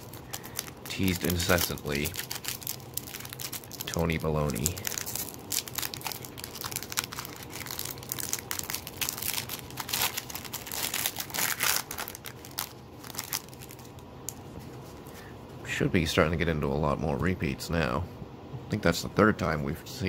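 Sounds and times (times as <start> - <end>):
foil pack tearing and crinkling: 0.0 - 14.0.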